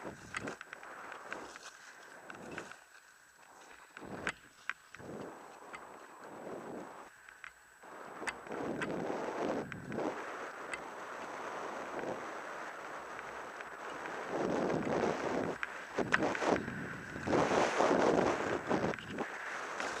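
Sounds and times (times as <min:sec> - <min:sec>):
wind buffeting microphone: 0:00.0 - 0:01.6, 0:05.0 - 0:07.1, 0:07.8 - 0:20.0
sharp clicks: 0:07.1 - 0:07.6
ski edges scraping on snow: 0:13.2 - 0:20.0.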